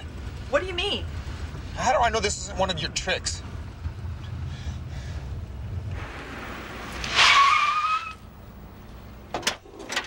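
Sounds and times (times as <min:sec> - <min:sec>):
low engine rumble: 0:00.0 - 0:10.0
car tyres squealing: 0:05.9 - 0:08.5.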